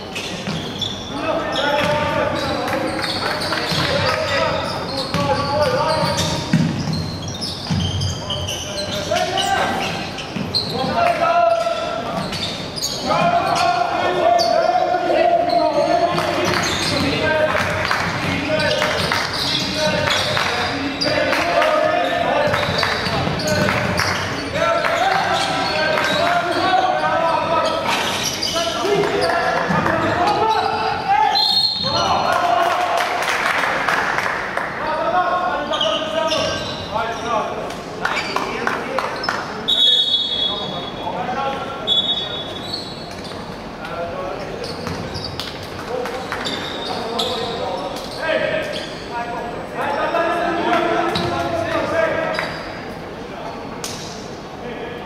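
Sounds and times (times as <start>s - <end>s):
basketball bouncing on hardwood: 6.2s - 8.0s.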